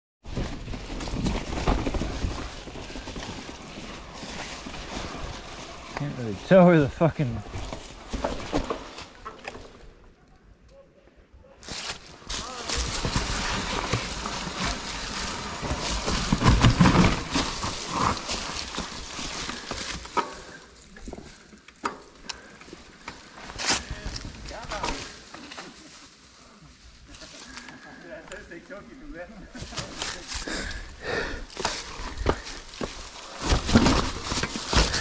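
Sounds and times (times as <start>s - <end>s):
bike knocking and rattling: 0.2s - 10.0s, 11.7s - 25.8s, 29.5s - 35.0s
tyres crunching dry leaves: 0.3s - 9.7s, 11.6s - 28.0s, 29.5s - 35.0s.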